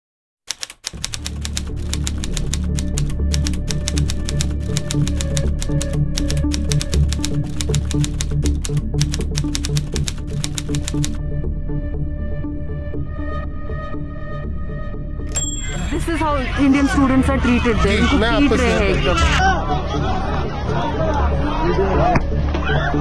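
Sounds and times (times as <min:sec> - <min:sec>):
typewriter keys clattering: 0:00.5 - 0:08.3, 0:09.0 - 0:11.2
background music with low pulse: 0:01.0 - 0:23.0.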